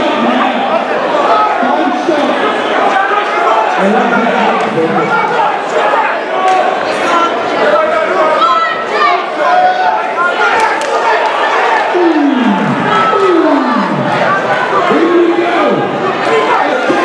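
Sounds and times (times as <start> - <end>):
crowd shouting and chattering: 0.0 - 17.0.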